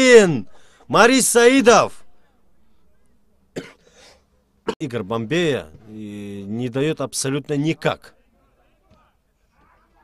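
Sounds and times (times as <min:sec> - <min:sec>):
person coughing: 0:03.6 - 0:04.8.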